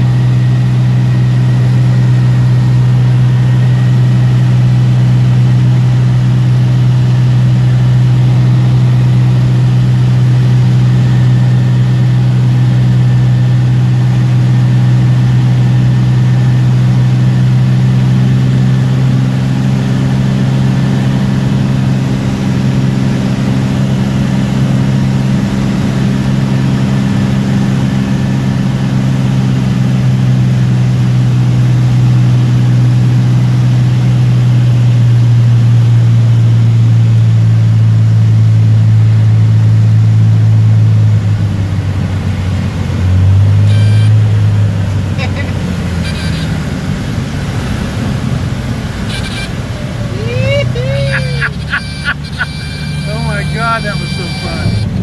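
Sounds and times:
light aircraft engine droning: 0.0 - 55.0.

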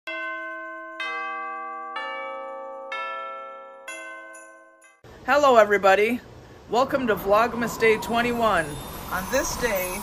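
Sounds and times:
bell-like chime notes: 0.1 - 5.0, 8.0 - 10.0.

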